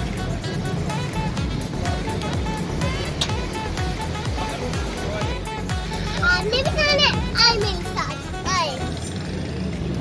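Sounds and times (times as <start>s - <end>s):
background music: 0.0s - 10.0s
girl calling out excitedly: 6.2s - 8.9s.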